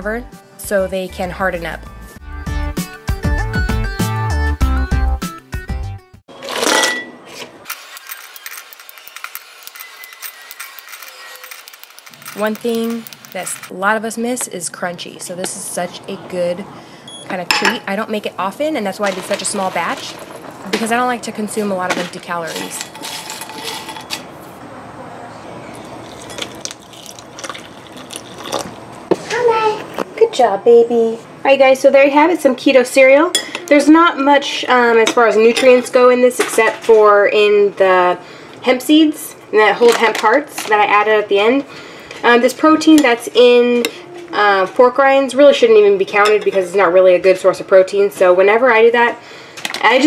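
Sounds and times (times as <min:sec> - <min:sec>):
crunchy pieces clicking and crackling: 0:07.9 - 0:13.7
milk pouring into bowl: 0:25.7 - 0:28.8
child's voice: 0:29.2 - 0:29.9, 0:43.9 - 0:44.6.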